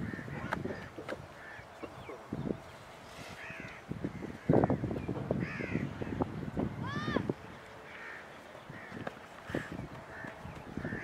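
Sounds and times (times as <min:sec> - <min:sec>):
bird calling: 0:00.0 - 0:11.0.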